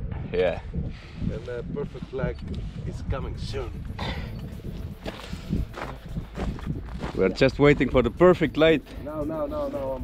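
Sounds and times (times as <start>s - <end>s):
footsteps on gravel: 4.6s - 8.0s.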